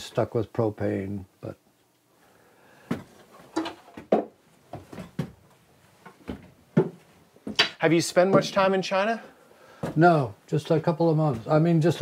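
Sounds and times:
wooden knocks and thumps: 2.9s - 8.7s.

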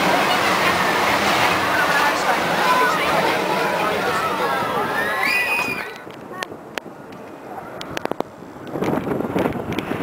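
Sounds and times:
people's voices: 0.0s - 8.2s
ride rolling on steel track: 0.0s - 10.0s.

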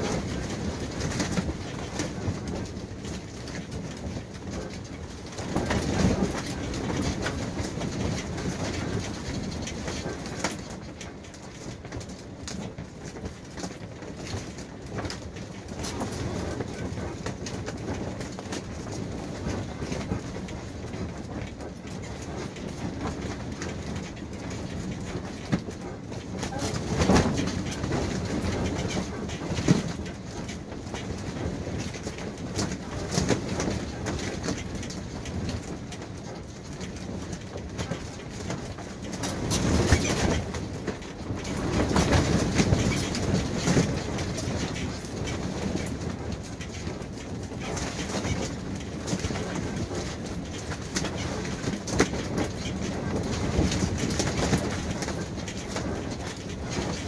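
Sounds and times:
canvas flapping and knocking: 0.0s - 57.0s
strong wind buffeting canvas: 0.0s - 57.0s.

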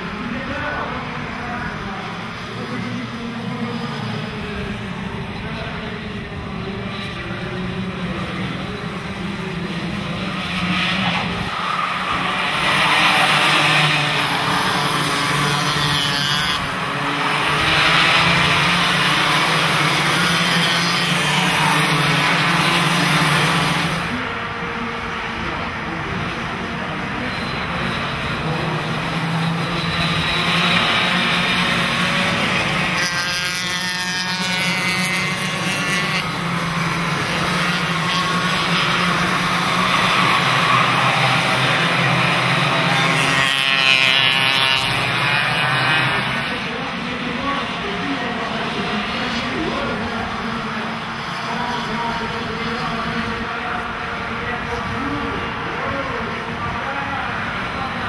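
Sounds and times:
kart engines racing: 0.0s - 58.0s.

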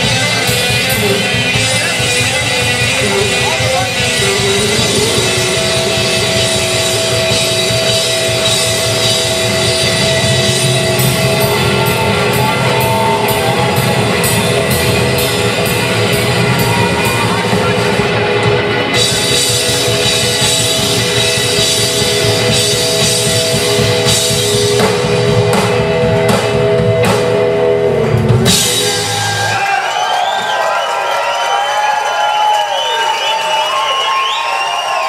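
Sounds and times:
live rock band playing: 0.0s - 29.9s.

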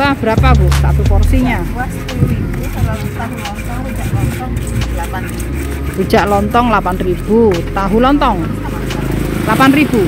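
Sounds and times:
road traffic rumble: 0.0s - 10.0s
stone pestle grinding in mortar: 0.0s - 10.0s.

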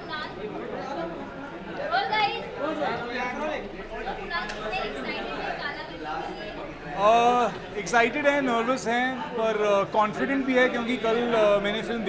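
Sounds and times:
indistinct crowd chatter: 0.0s - 12.0s.

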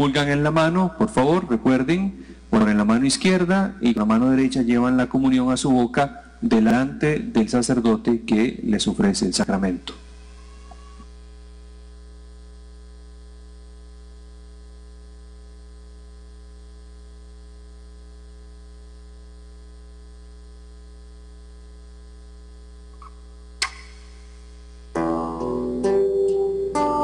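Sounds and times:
electrical mains hum: 0.0s - 27.0s
sharp click: 22.9s - 24.1s.

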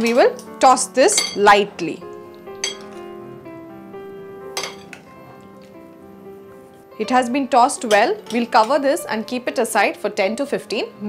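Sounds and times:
background music of held notes: 0.0s - 11.0s
metal spoon clinking glass bowl: 1.1s - 1.6s, 2.6s - 3.2s, 4.6s - 5.1s, 7.8s - 8.8s.

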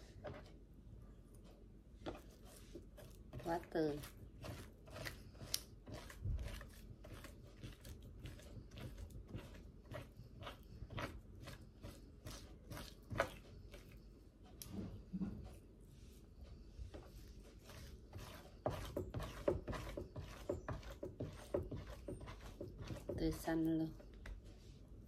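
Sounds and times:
knife scraping fish on cutting board: 2.0s - 13.8s, 17.6s - 23.3s.

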